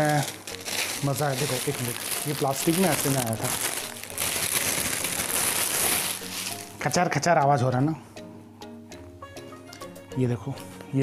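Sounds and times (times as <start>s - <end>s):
plastic bag crinkling: 0.0s - 6.8s.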